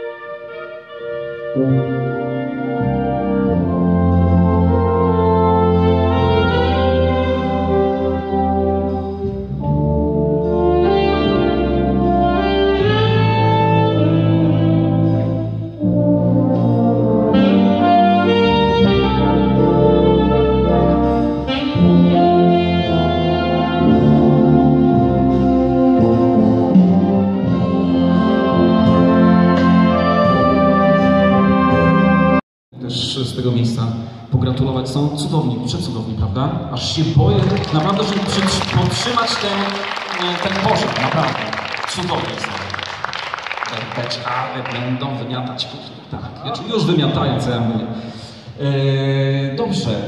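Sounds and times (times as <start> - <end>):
wind band playing chords: 0.0 - 32.4, 37.4 - 45.5.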